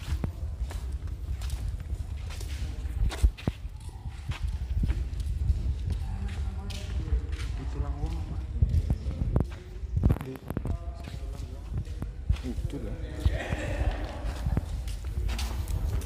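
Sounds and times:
faint voices: 0.0 - 16.0
footsteps on walkway: 0.0 - 16.0
steady low rumble: 0.0 - 16.0.

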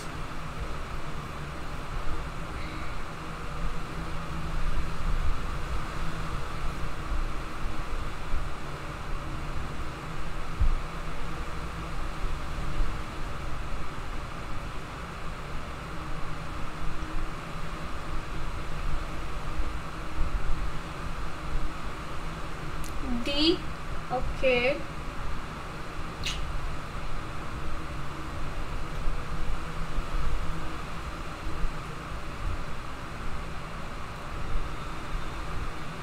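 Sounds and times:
background hiss: 0.0 - 36.0.

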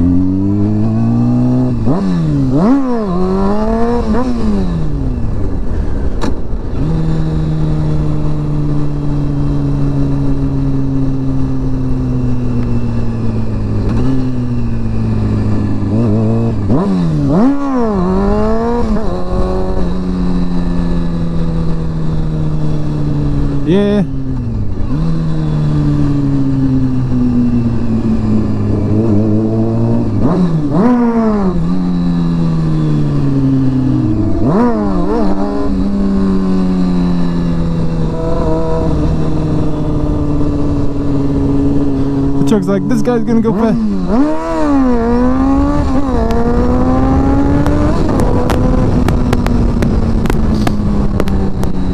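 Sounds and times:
motorcycle engine revving: 0.0 - 51.9.

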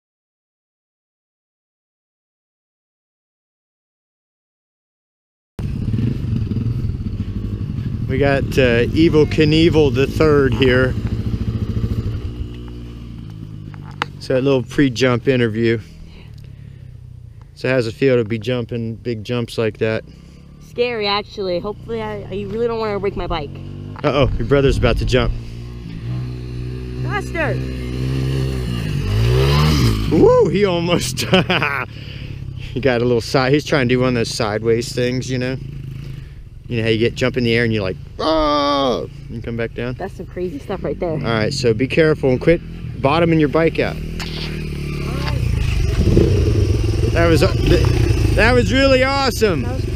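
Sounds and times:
dirt bike engine idling: 5.6 - 49.9.

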